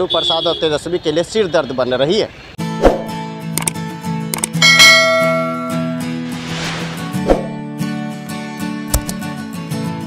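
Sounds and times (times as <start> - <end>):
quick clicks: 3.6 - 4.6, 8.9 - 9.2
bright bell-like chime: 4.6 - 6.0.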